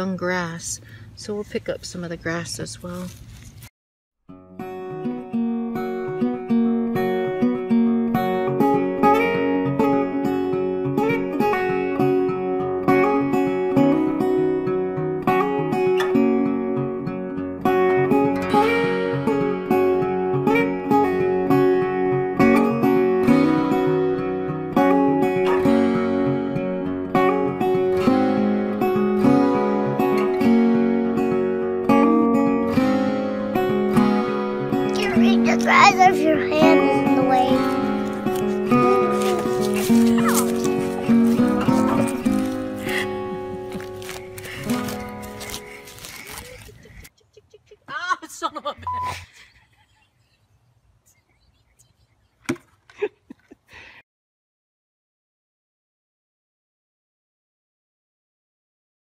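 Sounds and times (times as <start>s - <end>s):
acoustic guitar plucking: 4.3s - 46.0s.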